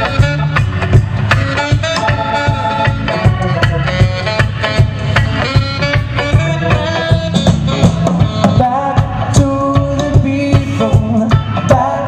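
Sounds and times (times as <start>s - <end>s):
drum kit beat: 0.0s - 12.0s
live band playing: 0.0s - 12.0s.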